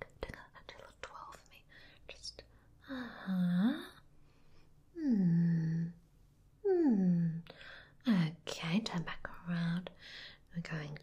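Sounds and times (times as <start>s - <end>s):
woman speaking softly: 8.0s - 9.9s, 10.5s - 11.0s.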